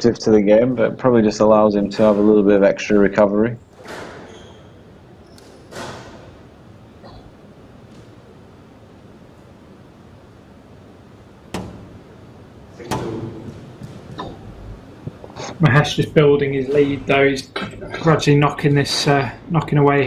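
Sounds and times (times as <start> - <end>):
quiet hall ambience: 0.0 - 20.0
squash ball hitting walls: 5.4 - 6.4, 11.5 - 12.0, 12.8 - 14.4.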